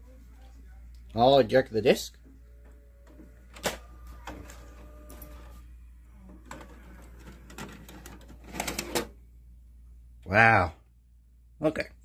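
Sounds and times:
disc tray mechanism whirring: 0:02.4 - 0:09.1.

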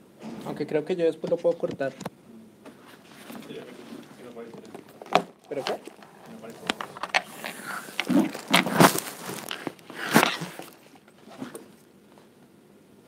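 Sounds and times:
camera handling noise: 0:04.0 - 0:11.8.

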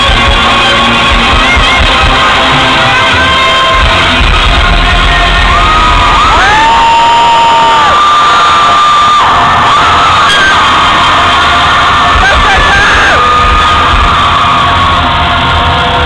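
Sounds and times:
crowd screaming and cheering: 0:00.0 - 0:16.0
loud live music: 0:00.0 - 0:16.0
high-pitched screams: 0:04.5 - 0:16.0.

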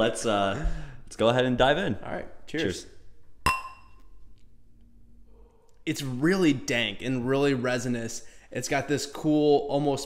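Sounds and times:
glasses clinking: 0:03.5 - 0:04.1.

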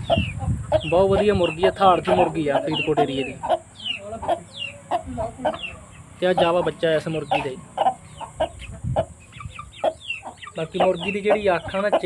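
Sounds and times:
chicks peeping: 0:00.0 - 0:12.0
hen clucking: 0:00.0 - 0:12.0.

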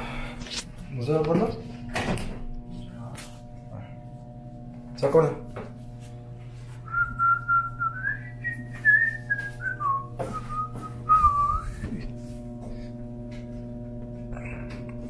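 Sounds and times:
steady electrical hum: 0:00.0 - 0:15.0
person whistling a tune: 0:06.8 - 0:11.9.

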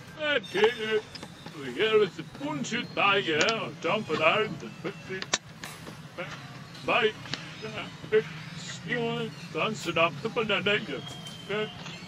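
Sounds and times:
sharp clicks: 0:03.4 - 0:03.6.

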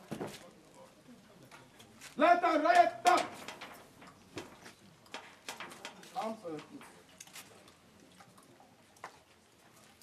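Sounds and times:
shouted drill call: 0:02.2 - 0:03.4.

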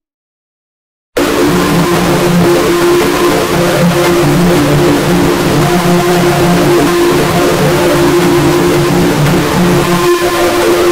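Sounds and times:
harsh distorted buzz: 0:01.2 - 0:10.9
wavering low tone: 0:01.2 - 0:10.9.

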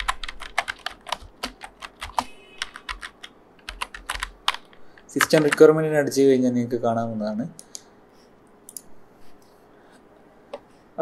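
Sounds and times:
keyboard typing clicks: 0:00.0 - 0:05.7.

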